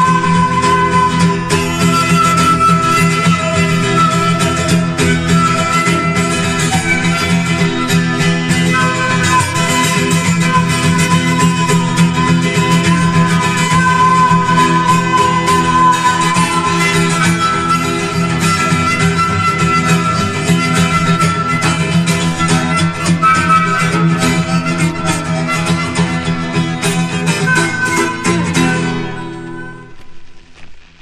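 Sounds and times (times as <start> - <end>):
held melody line: 0.0 - 30.5
strummed acoustic guitar: 0.0 - 30.9.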